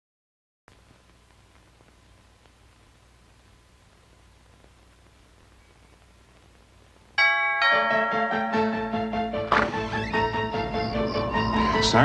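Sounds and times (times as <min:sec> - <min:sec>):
quiet hiss: 0:00.7 - 0:11.3
bell-like chimes ringing: 0:07.2 - 0:09.2.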